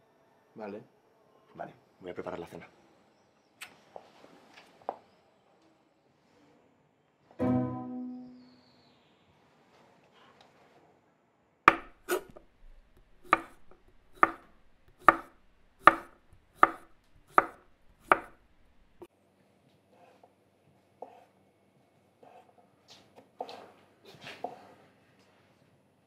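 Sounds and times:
knife chopping on wooden board: 0:11.7 - 0:19.1.

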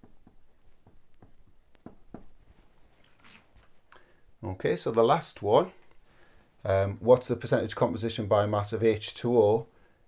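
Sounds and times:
marker writing on whiteboard: 0:00.0 - 0:02.6.

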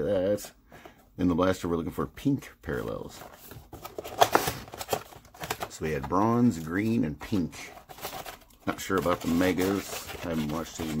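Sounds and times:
cardboard box crackling and rustling: 0:03.1 - 0:06.2, 0:07.8 - 0:11.0.

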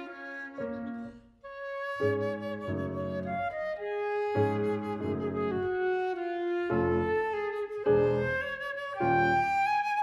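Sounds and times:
sustained flute line: 0:00.0 - 0:10.0
piano chords: 0:02.0 - 0:10.0.

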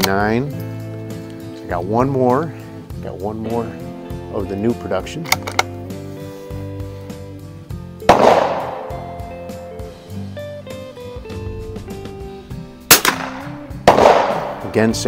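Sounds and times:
steady background music: 0:00.0 - 0:15.0
rifle shots: 0:08.1 - 0:09.1, 0:12.8 - 0:14.7.

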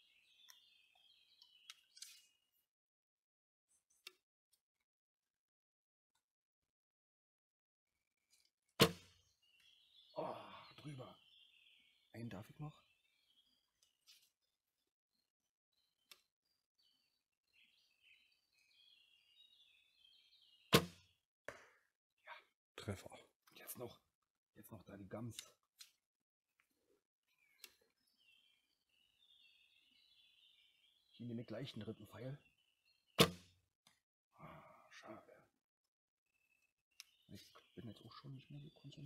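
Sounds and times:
faint birdsong: 0:00.0 - 0:02.7, 0:07.9 - 0:35.6, 0:36.2 - 0:39.0
bowstring snap: 0:20.7 - 0:21.7, 0:33.2 - 0:34.0
clicks of arrow on bow: 0:20.7 - 0:21.7, 0:33.2 - 0:33.6.

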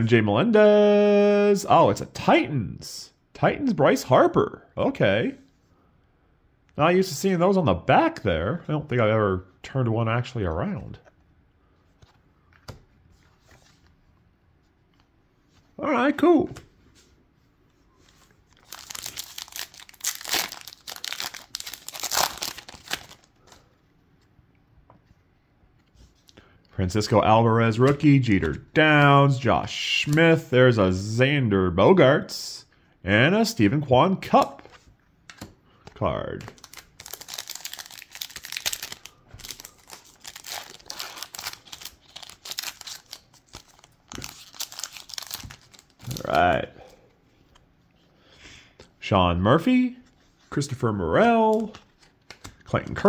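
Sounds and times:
foil wrapper crinkling and tearing: 0:18.5 - 0:23.3, 0:36.5 - 0:46.4.

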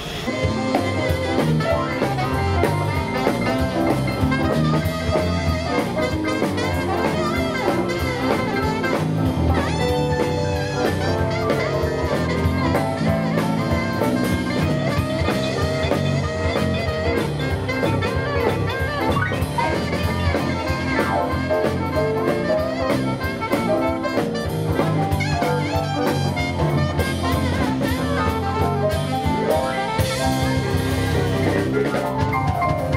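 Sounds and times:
bass guitar: 0:00.0 - 0:32.9
drum kit beat: 0:00.0 - 0:32.9
electric guitar: 0:00.0 - 0:32.9
keyboards: 0:00.0 - 0:32.9
saxophone: 0:00.0 - 0:32.9.

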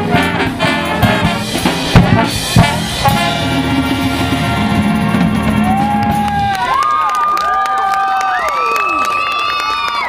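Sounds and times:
jazz big band chord: 0:00.0 - 0:05.9
audience cheering and whooping: 0:04.7 - 0:10.0.

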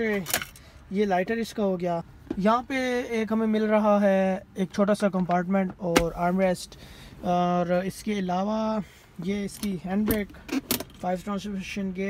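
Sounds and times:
man talking: 0:00.9 - 0:10.4, 0:11.0 - 0:12.0.

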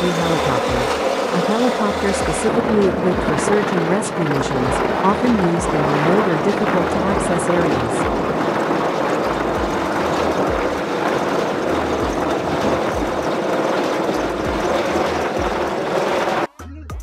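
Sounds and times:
helicopter rotor and turbine: 0:00.0 - 0:16.5.

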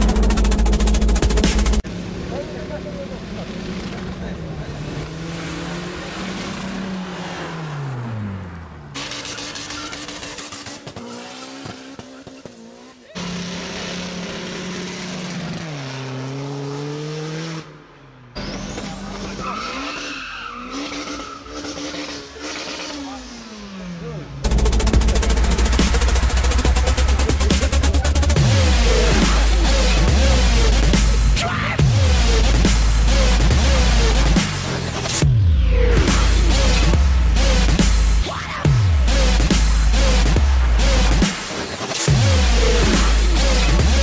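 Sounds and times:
music: 0:00.0 - 0:01.8, 0:24.5 - 0:44.0
car engines revving: 0:00.0 - 0:44.0
tyres squealing: 0:09.0 - 0:13.3.

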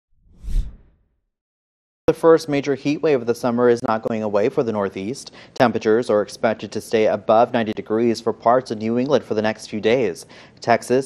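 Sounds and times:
whoosh sound effect: 0:00.2 - 0:01.0.

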